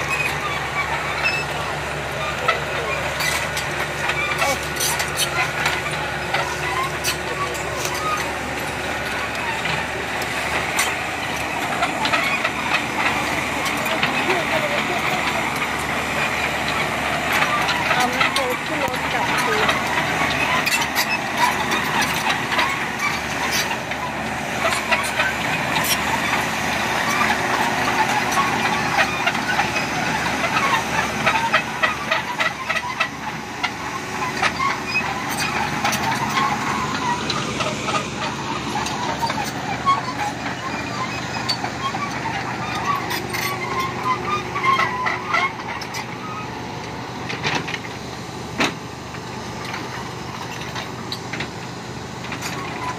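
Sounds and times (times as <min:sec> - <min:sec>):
diesel truck idling: 0:00.0 - 0:52.9
excavator diesel engine running: 0:00.0 - 0:52.9
steel tracks clanking on pavement: 0:00.0 - 0:52.9.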